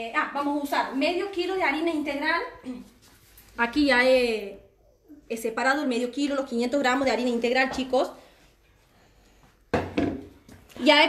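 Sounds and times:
woman speaking: 0:00.0 - 0:03.0, 0:03.6 - 0:08.2, 0:10.7 - 0:11.0.

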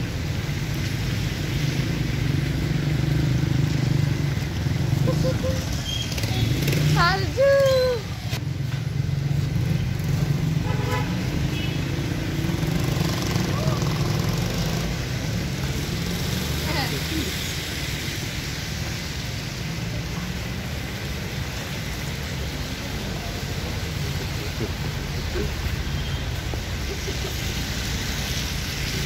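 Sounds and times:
traffic rumble: 0:00.0 - 0:29.0
car horn toot: 0:10.6 - 0:11.8.

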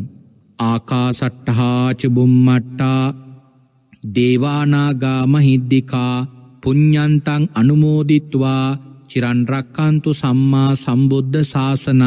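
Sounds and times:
man chanting low: 0:00.0 - 0:03.4, 0:04.0 - 0:12.0.

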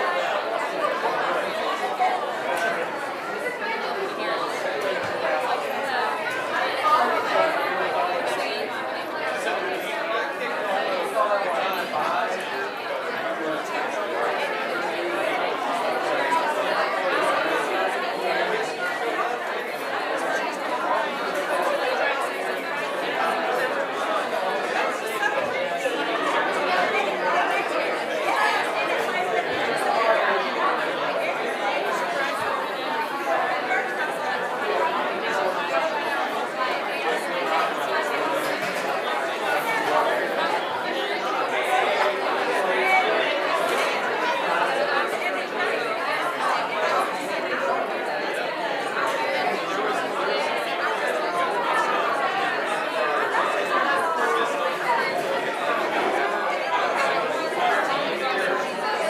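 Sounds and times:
hubbub of overlapping voices: 0:00.0 - 0:59.0.

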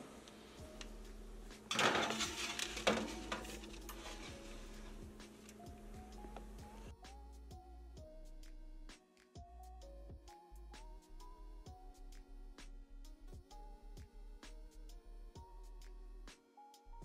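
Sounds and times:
soft background music: 0:00.0 - 0:17.0
sharp metal clunk: 0:01.7 - 0:03.8
baking sheet scraping on oven rack: 0:01.7 - 0:05.4.

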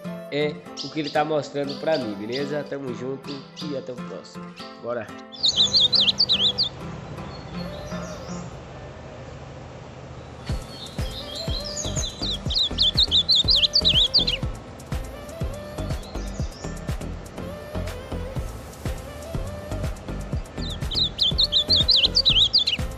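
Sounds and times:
music with a steady beat: 0:00.0 - 0:00.3, 0:10.5 - 0:22.9
songbird warbling: 0:00.4 - 0:08.6, 0:10.2 - 0:14.6, 0:15.5 - 0:18.3, 0:19.6 - 0:22.9.

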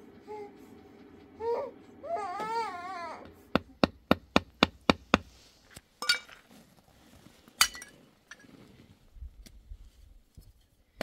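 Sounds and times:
baby crying: 0:01.4 - 0:03.4
hammer strikes: 0:03.2 - 0:05.4.

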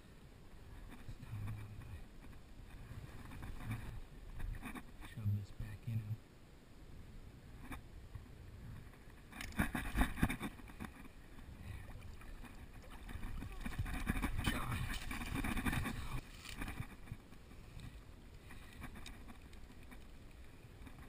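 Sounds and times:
rustling: 0:08.7 - 0:21.0
water splashing: 0:11.8 - 0:17.0.

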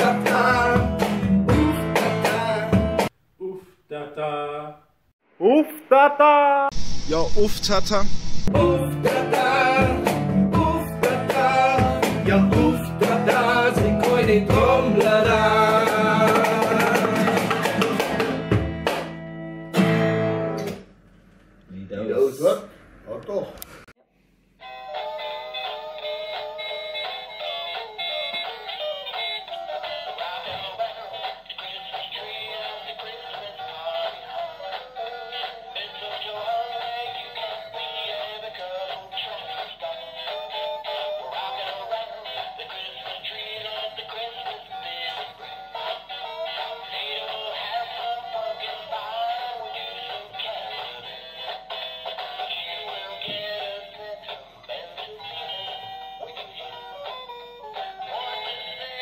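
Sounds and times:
toy playing sung tune through speaker: 0:24.6 - 0:59.0.

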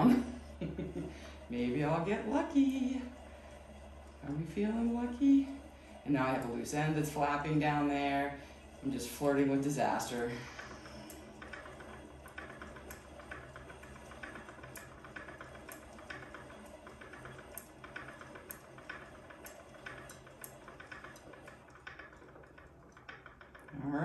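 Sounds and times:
yarn winder ticking: 0:00.0 - 0:24.0.

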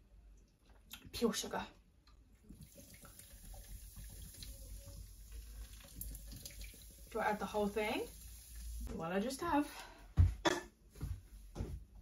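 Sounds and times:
liquid pouring into bowl: 0:02.5 - 0:08.9.

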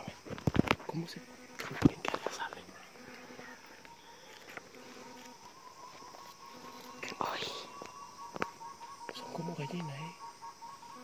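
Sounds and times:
quiet forest ambience: 0:00.0 - 0:11.0
hushed whispering: 0:01.6 - 0:03.8, 0:07.0 - 0:07.9
faint steady high tone: 0:02.7 - 0:11.0.

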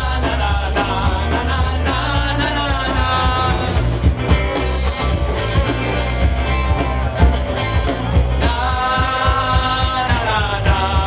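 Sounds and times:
man singing into microphone: 0:00.0 - 0:03.8, 0:08.4 - 0:11.0
drums: 0:00.0 - 0:11.0
electric guitars: 0:00.0 - 0:11.0.

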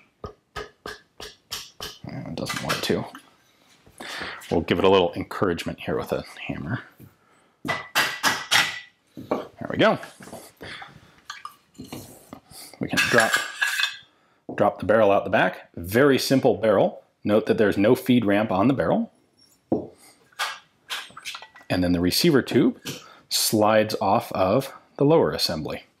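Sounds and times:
hammer tapping metal barrel: 0:00.2 - 0:03.1.

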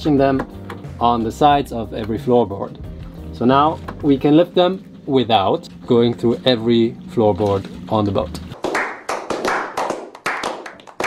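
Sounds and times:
people clapping: 0:08.6 - 0:11.0.

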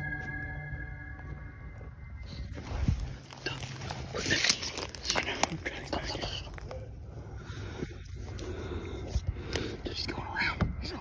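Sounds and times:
people whispering: 0:03.3 - 0:11.0.

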